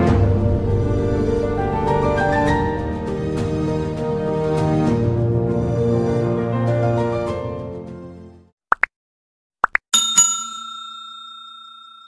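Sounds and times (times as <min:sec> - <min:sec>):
bright bell dinging: 0:10.0 - 0:12.0.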